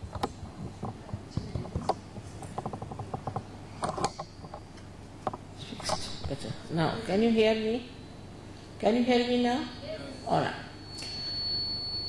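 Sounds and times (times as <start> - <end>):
microphone handling noise: 0.0 - 7.2.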